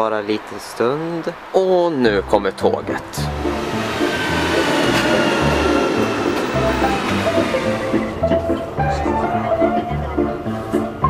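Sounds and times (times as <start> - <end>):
background music with steady beat: 2.1 - 11.0
electric train pulling in: 2.9 - 9.9.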